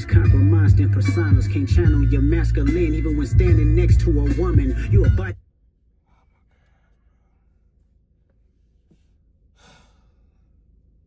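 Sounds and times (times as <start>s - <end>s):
faint low hum: 0.1s - 11.0s
man sighing: 9.6s - 10.1s.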